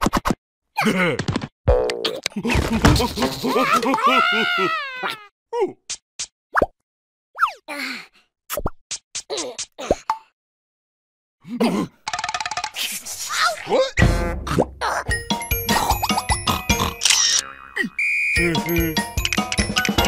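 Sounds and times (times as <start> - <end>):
wavering vocal cry: 3.4 - 5.3.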